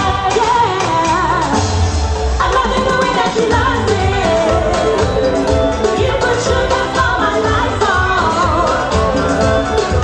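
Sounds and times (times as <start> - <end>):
woman singing: 0.0 - 1.8, 2.4 - 10.0
band playing keyboard drums and bass: 0.0 - 10.0.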